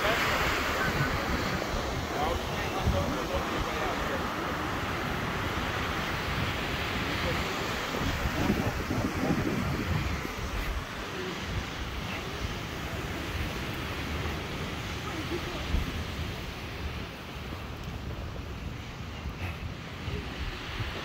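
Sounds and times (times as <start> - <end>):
faint voices: 0.0 - 21.0
ocean surf: 0.0 - 21.0
wind buffeting microphone: 0.0 - 21.0.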